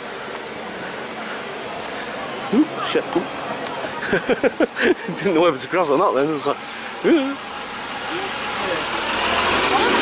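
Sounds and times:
road traffic hiss: 0.0 - 10.0.

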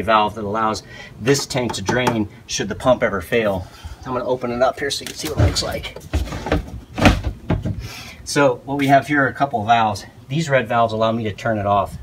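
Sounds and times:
plastic lid scraping and rubbing: 5.1 - 7.4.

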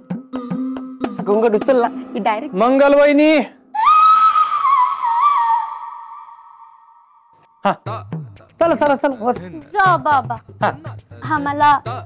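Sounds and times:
high whistle-like note: 3.7 - 7.6.

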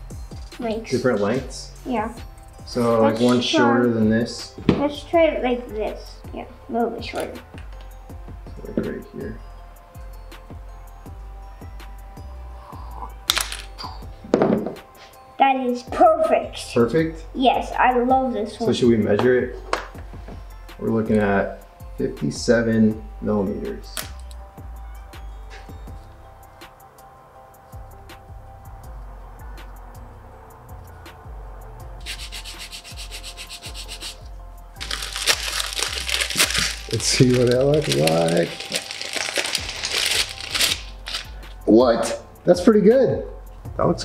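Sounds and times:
background music: 0.0 - 44.0
dull knock: 4.6 - 4.9
wooden stick snapping: 13.2 - 13.9, 24.0 - 24.4, 34.8 - 37.9
scratchy rubbing: 32.0 - 41.3
plastic wrapper crinkling: 34.8 - 41.4.

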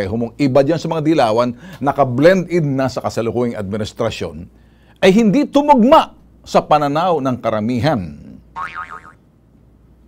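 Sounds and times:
man speaking: 0.0 - 8.5
warbling boing tone: 8.6 - 9.2.

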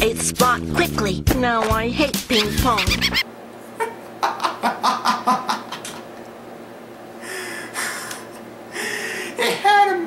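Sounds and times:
man laughing: 2.3 - 3.2, 3.8 - 6.1.

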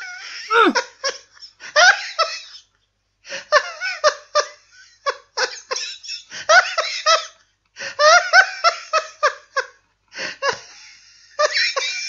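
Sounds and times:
person laughing heartily: 0.5 - 1.1.

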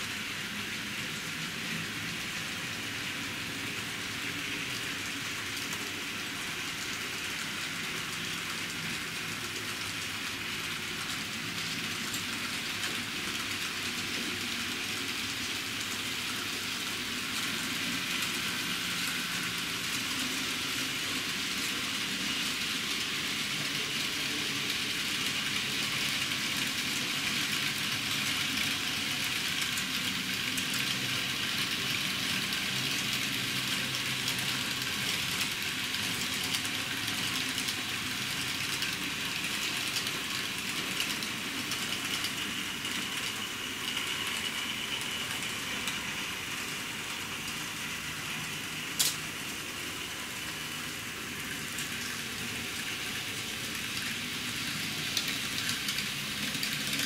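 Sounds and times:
model train motor hum: 0.0 - 57.0
small wheels rolling on rails: 0.0 - 57.0.

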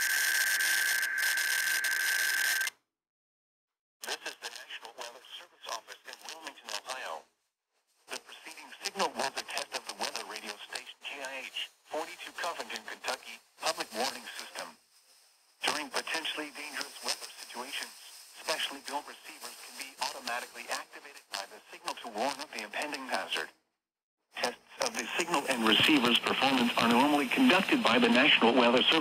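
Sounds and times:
radio static crackling: 0.0 - 2.7, 4.0 - 7.2, 8.1 - 14.8, 15.6 - 23.5, 24.4 - 29.0
radio voice reading: 4.0 - 7.2, 8.1 - 14.8, 15.6 - 23.5, 24.4 - 29.0.

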